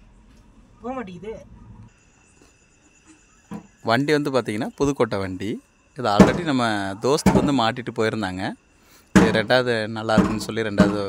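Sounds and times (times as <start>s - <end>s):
crickets chirring: 0.0s - 11.0s
man speaking: 3.9s - 8.6s, 9.2s - 11.0s.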